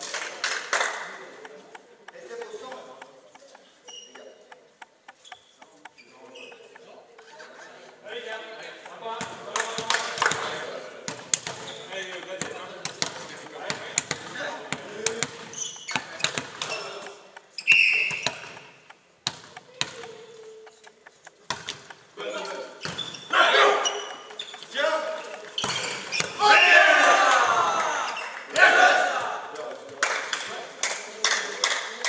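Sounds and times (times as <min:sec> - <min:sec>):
volleyball bouncing and struck: 0:08.8 - 0:27.5
referee whistle: 0:17.6 - 0:18.4, 0:26.4 - 0:27.0
players shouting: 0:23.3 - 0:29.5.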